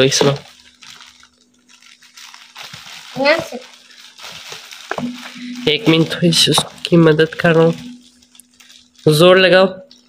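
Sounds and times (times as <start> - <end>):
faint steady hum: 0.0 - 10.0
package wrapping rustling: 0.0 - 10.0.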